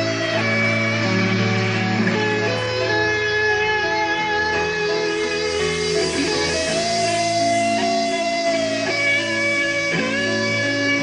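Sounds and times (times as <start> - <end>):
electric guitar slow melody: 0.0 - 11.0
held chords: 0.0 - 11.0.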